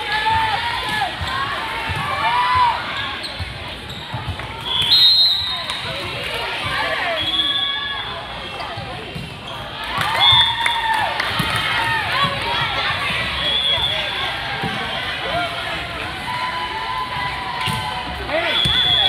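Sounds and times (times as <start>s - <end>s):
players calling and shouting: 0.0s - 19.0s
shoes squeaking on court: 3.2s - 4.6s.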